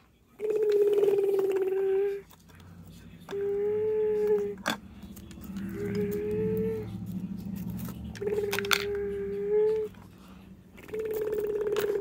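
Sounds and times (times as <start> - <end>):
child making truck noise: 3.2 - 7.2.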